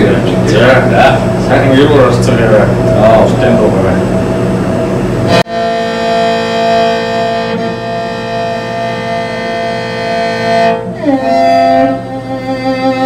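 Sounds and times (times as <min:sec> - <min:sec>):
bowed fiddle long note: 0:05.3 - 0:13.0.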